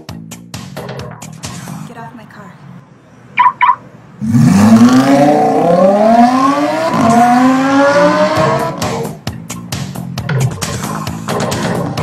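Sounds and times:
electronic beeps: 3.4 - 3.8
sports car engine accelerating: 4.2 - 9.2.

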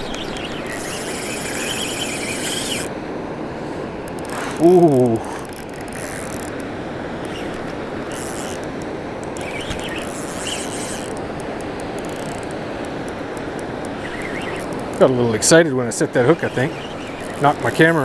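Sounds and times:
fishing reel ticking: 0.0 - 2.9, 4.1 - 6.6, 7.2 - 15.6, 16.2 - 18.0
river rushing: 0.0 - 18.0.

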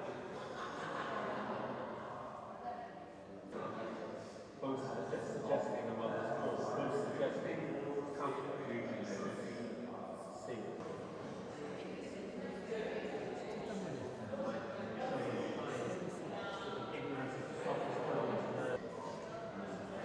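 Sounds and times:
chatter of many people: 0.0 - 20.0.

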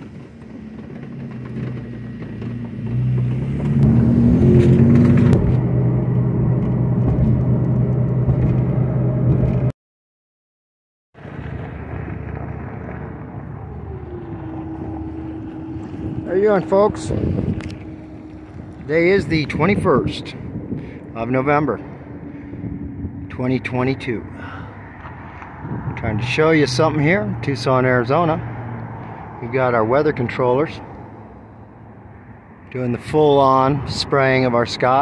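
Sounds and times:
car engine revving: 0.0 - 9.7, 11.2 - 34.9
constant tone: 11.7 - 28.4.

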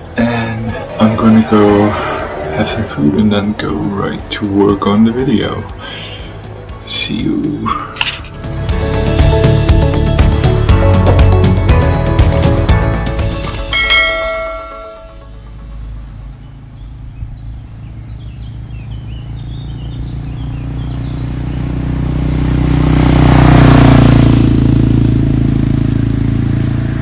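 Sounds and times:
motorcycle passing by: 0.0 - 4.2, 15.0 - 27.0
outro music with chimes: 8.5 - 16.5.

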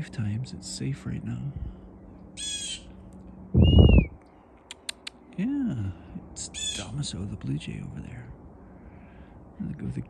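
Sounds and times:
low rumble on microphone: 0.0 - 1.9, 3.3 - 4.2
blue jay harsh jeer call: 2.4 - 2.9, 6.6 - 7.0.

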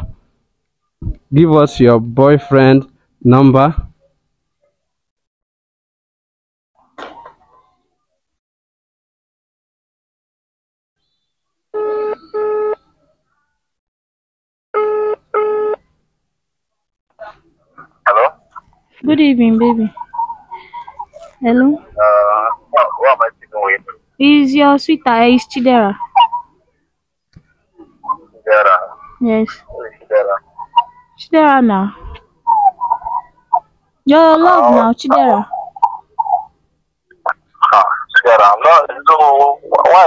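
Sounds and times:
man's voice over phone speaker: 1.3 - 3.9, 18.0 - 18.6, 21.9 - 24.0, 28.0 - 30.8, 37.2 - 40.0
phone ringback tone: 11.8 - 12.8, 14.8 - 15.8.

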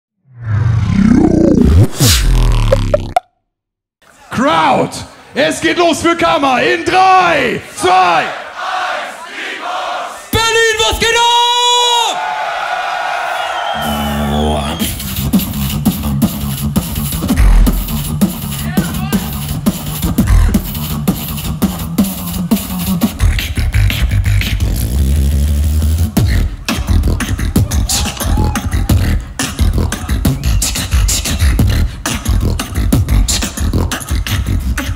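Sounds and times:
roaring rising sound effect: 0.2 - 3.2
beatboxing through a pa: 13.8 - 34.9.

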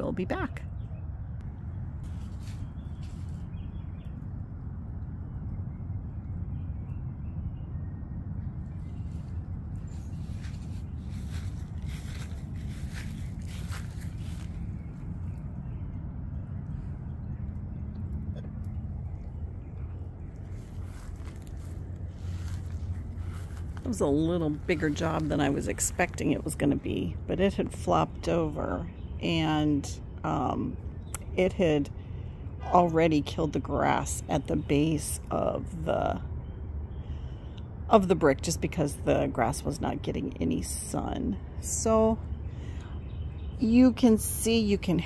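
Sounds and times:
low outdoor hum: 0.0 - 45.0.

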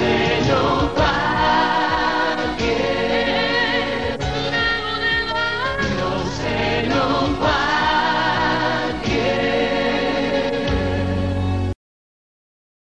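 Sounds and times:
theme song with sung voices: 0.0 - 11.8.

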